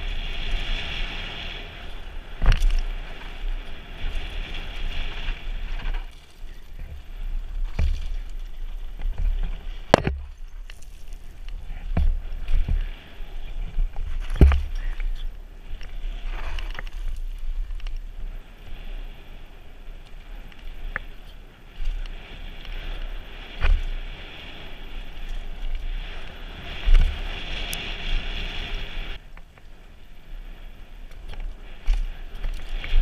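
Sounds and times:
bike clicks and rattles: 0:00.0 - 0:18.8, 0:31.0 - 0:33.0
tyres on gravel: 0:00.0 - 0:28.0
wind rumble on microphone: 0:00.0 - 0:33.0
bike knocking over bumps: 0:05.7 - 0:13.0, 0:13.7 - 0:15.2.

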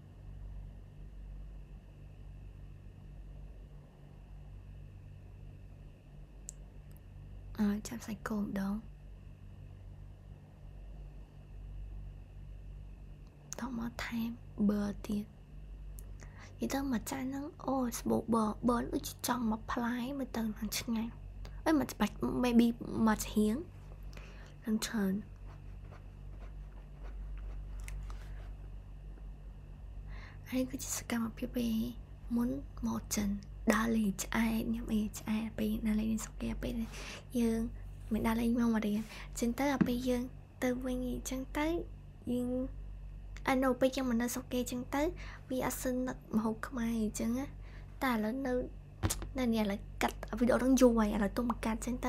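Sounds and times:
low room hum: 0:00.0 - 0:52.0
woman speaking softly: 0:07.5 - 0:08.9, 0:13.5 - 0:15.4, 0:16.4 - 0:23.8, 0:24.6 - 0:25.4, 0:30.4 - 0:42.8, 0:43.4 - 0:52.0
woman talking: 0:07.6 - 0:08.9, 0:13.5 - 0:15.3, 0:16.4 - 0:23.7, 0:24.6 - 0:25.3, 0:30.4 - 0:42.7, 0:43.4 - 0:52.0.

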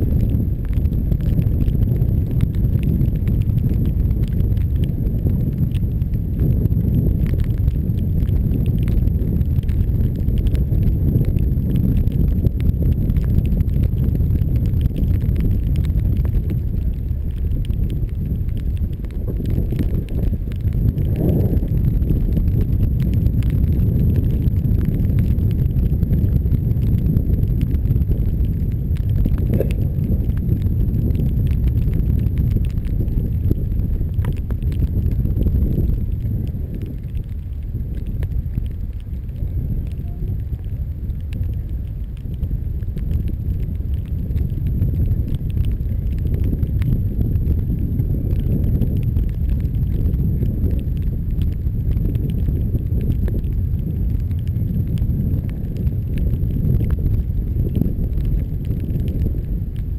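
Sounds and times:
tyres on wet road: 0:00.0 - 0:59.9
wind rumbling on microphone: 0:00.0 - 0:59.9.

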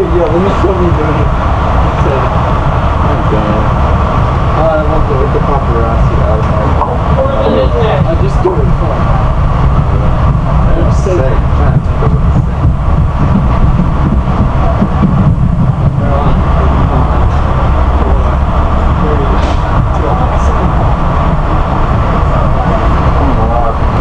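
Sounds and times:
faint voices: 0:00.0 - 0:24.0
train car low rumble: 0:00.0 - 0:24.0.

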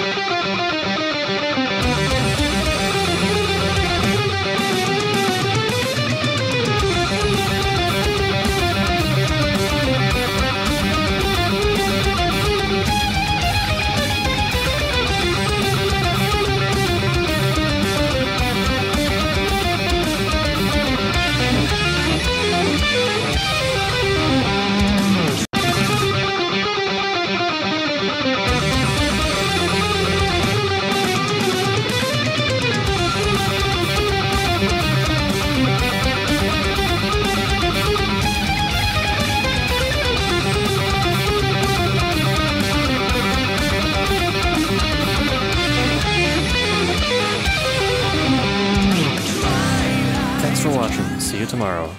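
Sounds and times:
fast electric guitar notes: 0:00.0 - 0:51.9.

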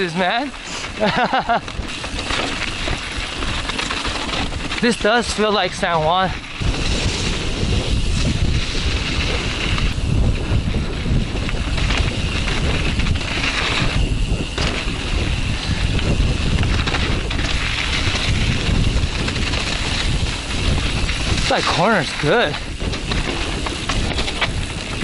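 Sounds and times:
bike tyres rolling on dirt: 0:00.0 - 0:25.0
wind on microphone: 0:00.0 - 0:25.0.

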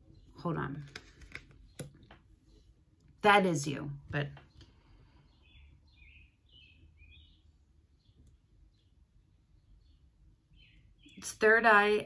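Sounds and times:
faint bird chirps: 0:04.4 - 0:11.4.

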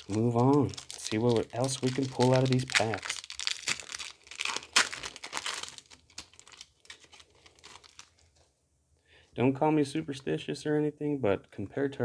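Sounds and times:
foil wrapper tearing and crinkling: 0:00.0 - 0:08.3.

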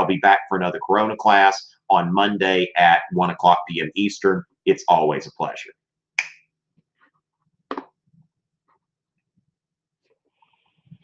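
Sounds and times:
finger snaps: 0:06.2 - 0:06.4.

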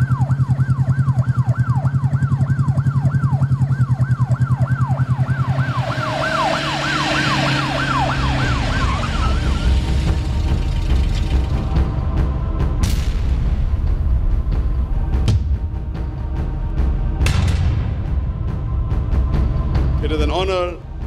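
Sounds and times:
police siren on fast yelp: 0:00.0 - 0:12.0.

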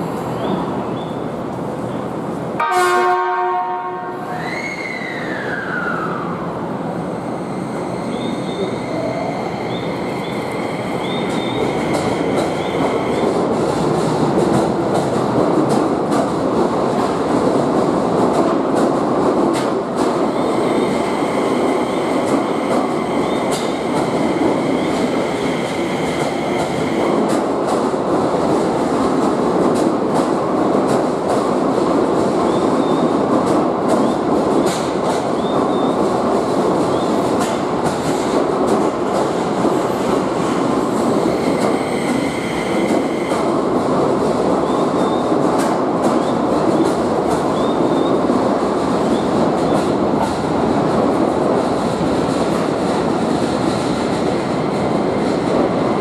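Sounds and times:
electric train rolling past: 0:00.0 - 0:56.0.

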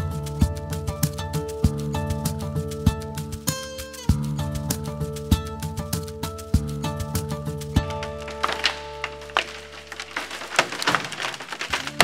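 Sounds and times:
background music sustained notes: 0:00.0 - 0:11.7
timber cracking and splintering: 0:07.8 - 0:12.0.

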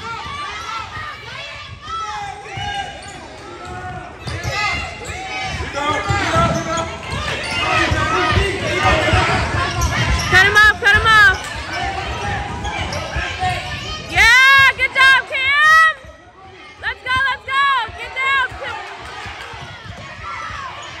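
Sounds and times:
people shouting: 0:00.0 - 0:16.0, 0:16.7 - 0:21.0
loud high shouts: 0:16.8 - 0:19.4
basketball bouncing on hardwood: 0:17.9 - 0:21.0.

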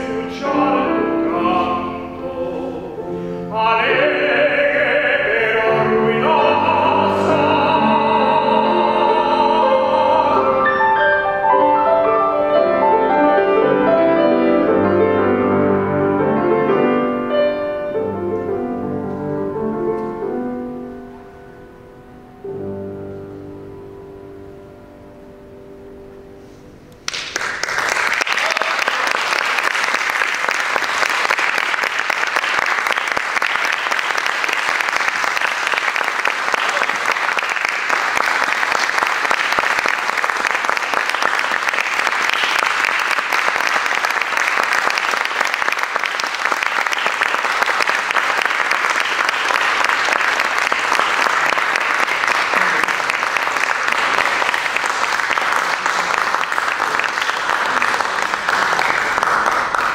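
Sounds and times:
audience applause: 0:27.1 - 0:59.9.

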